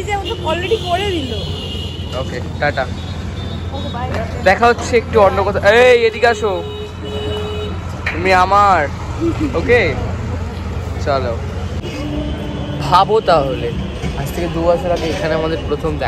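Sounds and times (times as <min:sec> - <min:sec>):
street traffic rumble: 0:00.0 - 0:16.0
voices speaking: 0:00.0 - 0:16.0.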